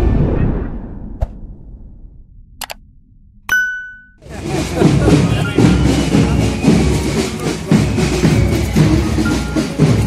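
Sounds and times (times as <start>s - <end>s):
outdoor noise: 0.0s - 10.0s
bright bell ding: 3.5s - 4.2s.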